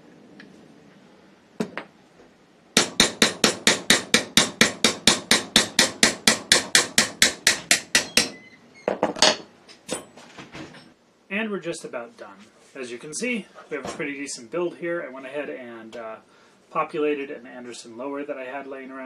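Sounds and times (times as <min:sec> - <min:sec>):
hammer tapping on metal: 0:02.8 - 0:08.4.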